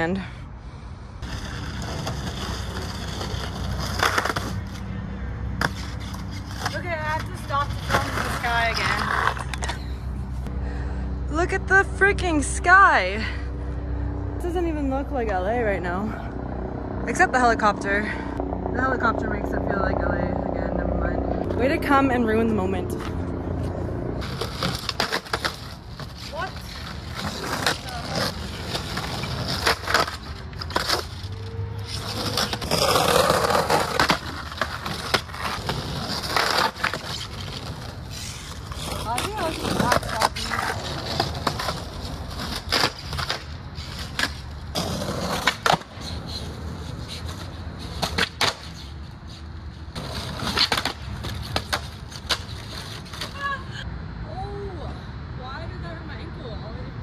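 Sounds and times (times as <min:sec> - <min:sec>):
skateboard wheels rolling on concrete: 0:00.0 - 0:57.0.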